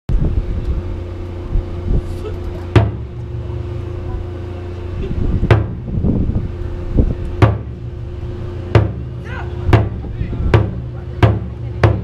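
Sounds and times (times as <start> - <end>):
faint steady hum: 0.1 - 12.0
wind buffeting microphone: 0.1 - 12.0.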